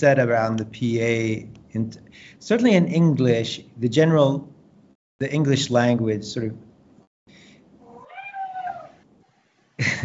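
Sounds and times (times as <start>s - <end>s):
cat meowing: 7.8s - 9.0s.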